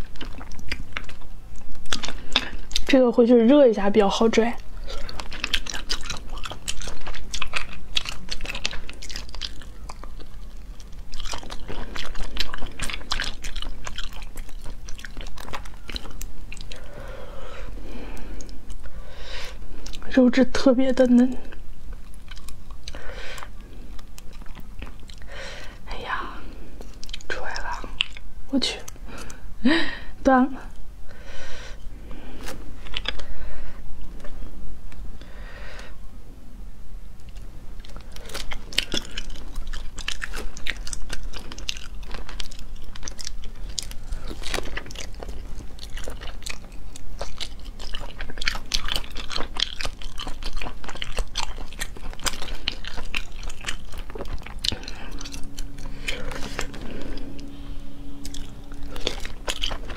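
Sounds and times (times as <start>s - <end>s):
chewing with wet mouth clicks: 0.0s - 3.0s, 4.1s - 17.0s, 18.0s - 20.1s, 21.0s - 25.8s, 26.5s - 29.4s, 32.4s - 33.4s, 37.2s - 59.9s.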